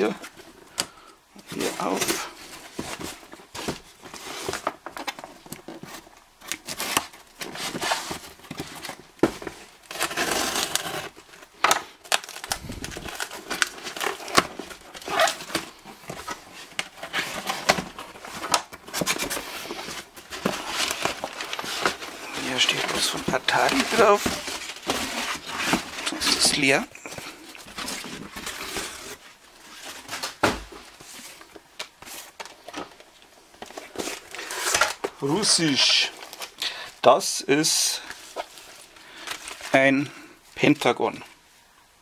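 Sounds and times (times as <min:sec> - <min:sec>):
cardboard scraping and tearing: 0:06.6 - 0:11.4, 0:12.2 - 0:31.4, 0:33.6 - 0:36.5.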